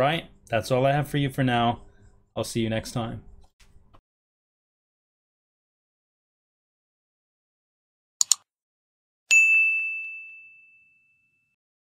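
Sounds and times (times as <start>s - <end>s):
quick clicks: 8.2s - 8.5s
bright bell-like ding: 9.3s - 11.6s.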